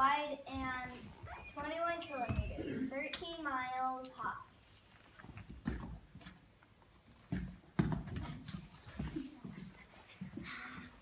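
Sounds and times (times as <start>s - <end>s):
shuffling footsteps: 4.6s - 11.0s.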